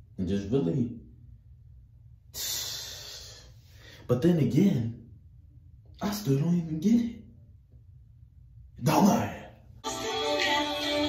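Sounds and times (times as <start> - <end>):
man exhaling: 2.3 - 4.0.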